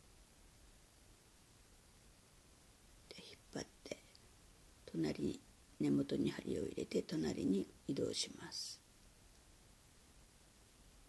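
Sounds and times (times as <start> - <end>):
woman whispering: 3.1 - 4.2, 4.9 - 8.8.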